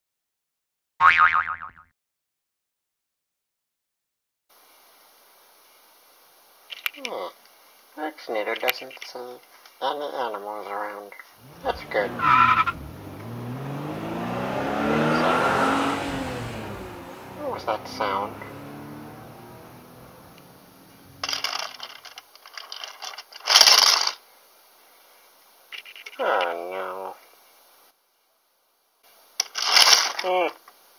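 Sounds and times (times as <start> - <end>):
cartoon boing: 1.0 - 1.9
toy figure crashing over: 21.2 - 24.2, 29.4 - 30.3
plastic clicking and clattering: 29.4 - 30.3.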